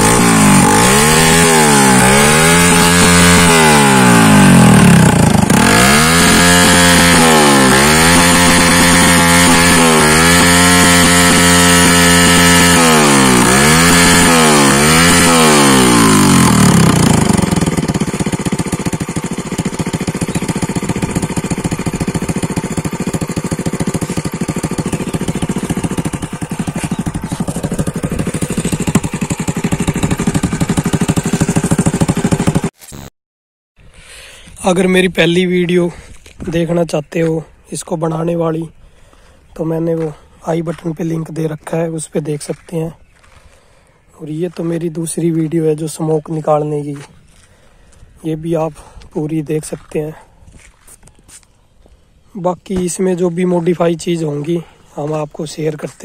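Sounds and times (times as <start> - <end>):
motorcycle engine revving and idling: 0.0 - 32.8.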